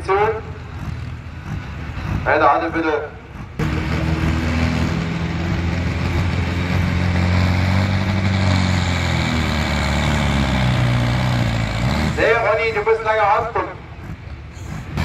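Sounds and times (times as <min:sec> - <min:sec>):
tractor diesel engine at full throttle: 0:00.0 - 0:15.0.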